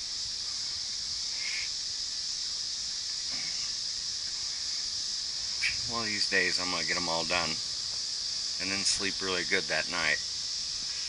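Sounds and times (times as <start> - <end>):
insect chorus drone: 0.0 - 11.0.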